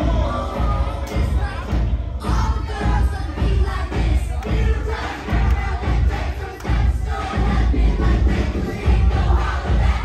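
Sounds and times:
crowd shouting and singing: 0.0s - 10.0s
dance music with heavy bass: 0.0s - 10.0s.

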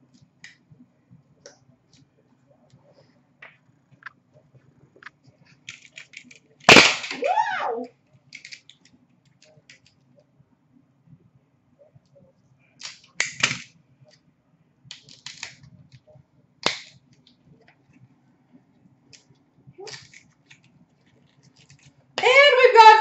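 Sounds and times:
packaging rustling and clicking: 5.6s - 6.6s, 19.9s - 22.0s
card packaging snapping: 14.9s - 15.6s, 16.6s - 17.3s.

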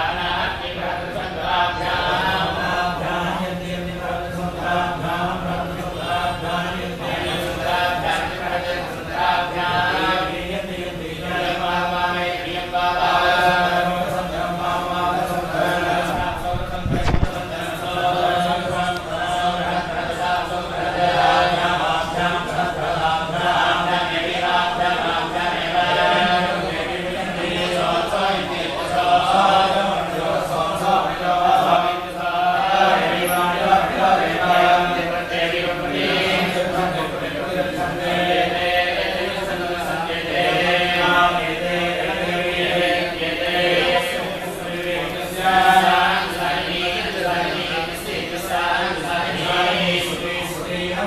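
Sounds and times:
voices chanting long notes: 0.0s - 51.0s.

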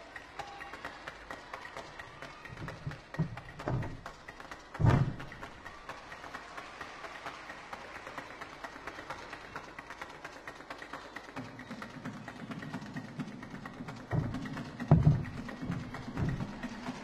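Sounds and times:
audience clapping: 0.0s - 17.0s
landing thud on gym floor: 4.8s - 5.3s.

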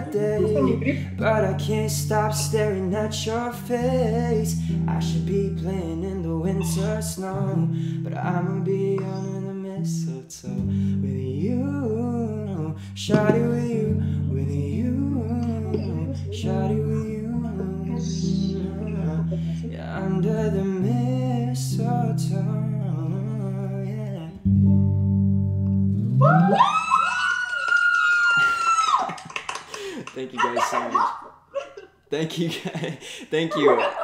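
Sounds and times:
excited voices: 0.0s - 1.5s, 15.4s - 20.2s, 26.2s - 32.4s, 33.4s - 34.0s
man singing: 0.0s - 24.5s
acoustic guitar strumming: 0.0s - 26.2s
loud high-pitched voice: 17.6s - 19.1s.

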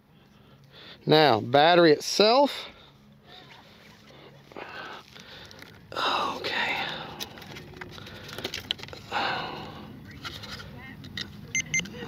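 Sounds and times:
breath: 0.2s - 1.0s, 4.1s - 6.1s, 6.8s - 10.0s
hands handling plastic toy: 6.8s - 9.1s
short electronic beeps: 11.5s - 11.9s.

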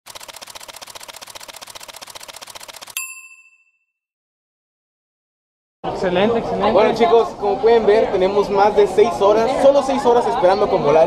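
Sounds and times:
bright bell ding: 3.0s - 4.0s.

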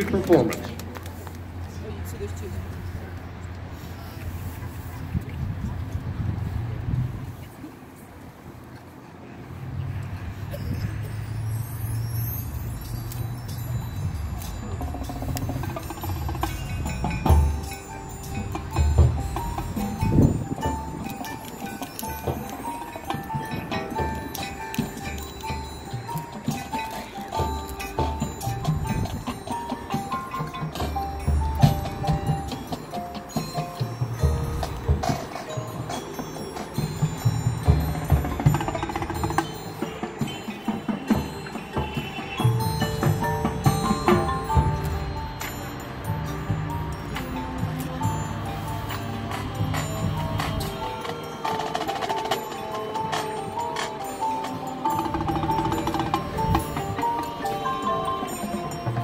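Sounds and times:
marching band playing: 14.4s - 59.0s
drum strikes: 14.7s - 48.3s.

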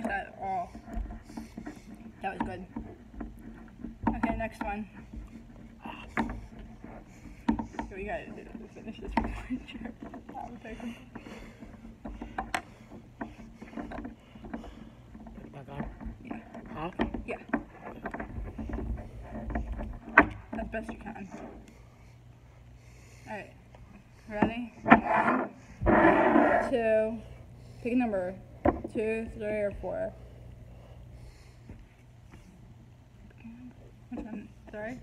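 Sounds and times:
ventilation hum: 0.0s - 35.0s.

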